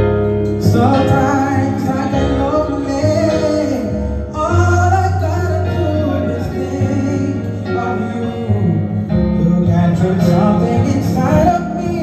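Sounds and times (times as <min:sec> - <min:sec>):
instrumental accompaniment: 0:00.0 - 0:12.0
man singing into a microphone: 0:00.5 - 0:12.0.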